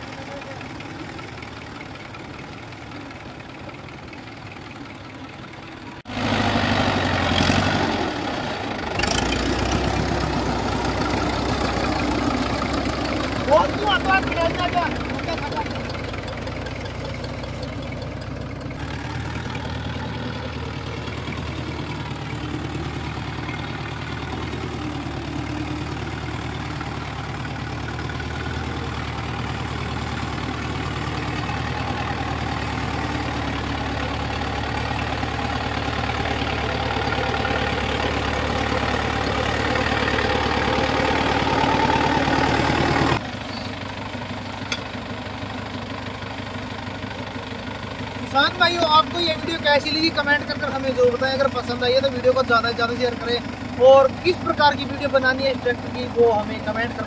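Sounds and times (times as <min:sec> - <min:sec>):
diesel tractor engines running: 0:00.0 - 0:57.0.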